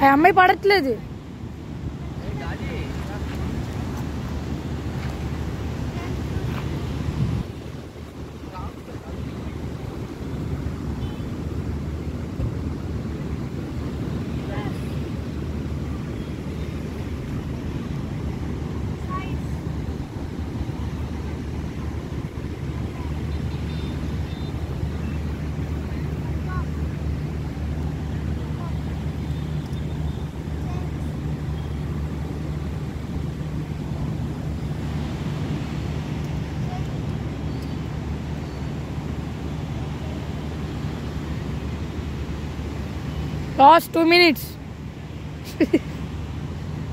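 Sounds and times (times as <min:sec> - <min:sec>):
distant traffic: 0:00.0 - 0:46.9
wind on microphone: 0:01.4 - 0:42.2.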